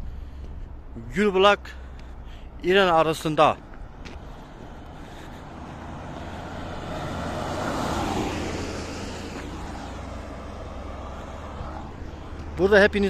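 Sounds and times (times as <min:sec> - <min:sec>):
minibus driving past on wet road: 0:05.2 - 0:12.5.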